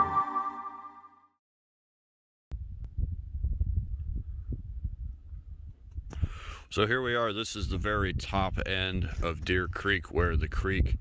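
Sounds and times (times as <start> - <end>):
wind buffeting microphone: 2.6 - 11.0.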